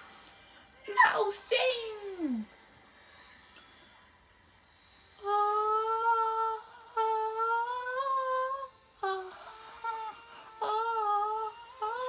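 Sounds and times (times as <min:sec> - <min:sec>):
boy humming: 0:05.2 - 0:12.0.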